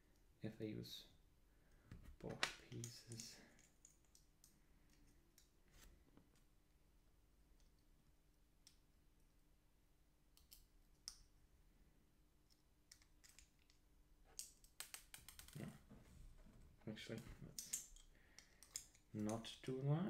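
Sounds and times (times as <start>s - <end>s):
small parts clicking: 2.6s - 5.5s, 10.4s - 11.3s, 12.4s - 15.6s, 17.5s - 19.6s.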